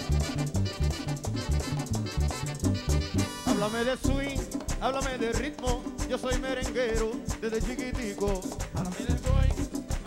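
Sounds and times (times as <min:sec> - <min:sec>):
live merengue band: 0:00.0 - 0:10.0
person singing: 0:03.4 - 0:10.0.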